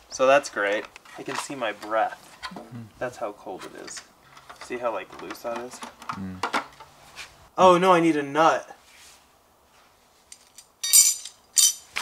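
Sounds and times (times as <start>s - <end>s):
metal screws clinking on concrete: 10.3s - 12.0s.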